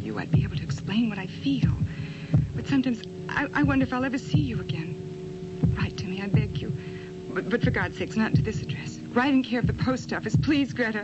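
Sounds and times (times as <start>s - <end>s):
woman speaking: 0.0s - 1.9s, 2.6s - 5.0s, 5.7s - 11.0s
steady low hum: 0.0s - 11.0s.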